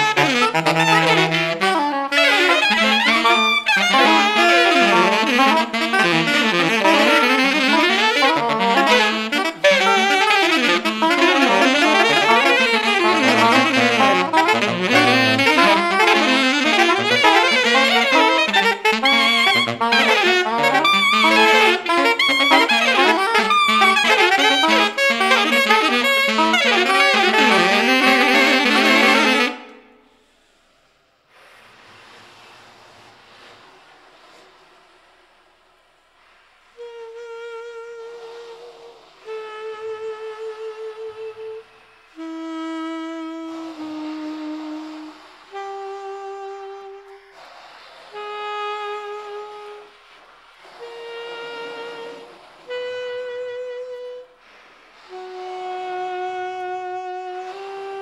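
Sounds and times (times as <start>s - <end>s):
saxophone quartet playing free jazz: 0.0s - 30.3s, 36.6s - 58.0s
breathy air sounds: 29.9s - 36.8s, 47.0s - 48.6s, 54.2s - 56.1s.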